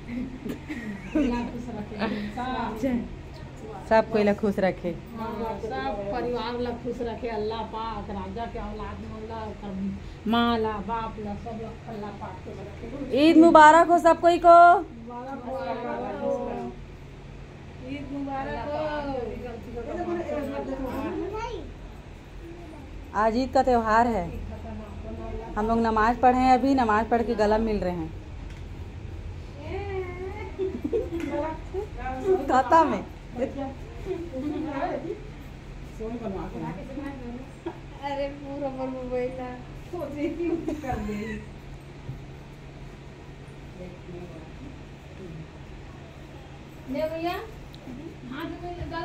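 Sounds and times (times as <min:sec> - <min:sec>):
steady low hum: 0:00.0 - 0:49.0
women talking: 0:01.0 - 0:16.8, 0:17.8 - 0:21.3, 0:23.1 - 0:28.2, 0:29.6 - 0:41.5, 0:46.9 - 0:49.0.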